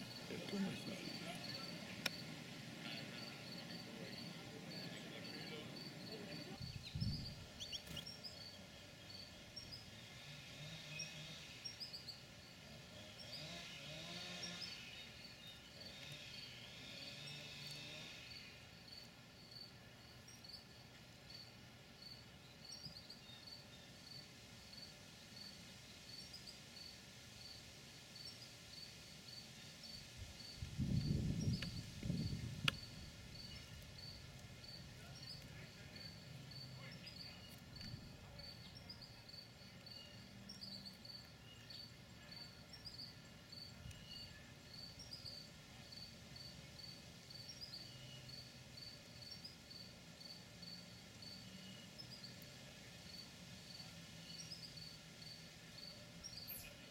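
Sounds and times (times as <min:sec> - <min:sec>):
insect chirping: 0:00.0 - 0:56.9.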